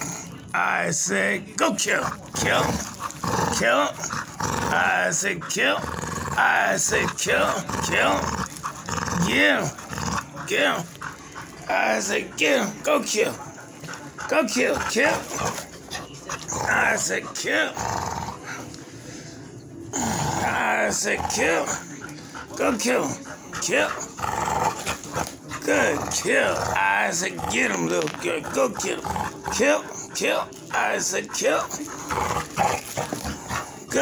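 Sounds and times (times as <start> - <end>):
dog growling low: 1.8 - 18.8, 19.8 - 34.0.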